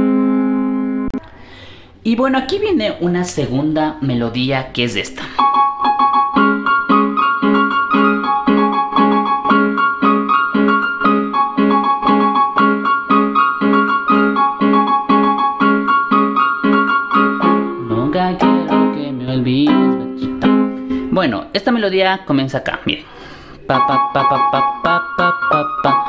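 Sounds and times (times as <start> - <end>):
high keyboard melody: 0.0 - 1.2, 5.4 - 21.3, 23.6 - 26.0
keyboard chords: 0.0 - 1.3, 5.3 - 21.2, 23.6 - 26.0.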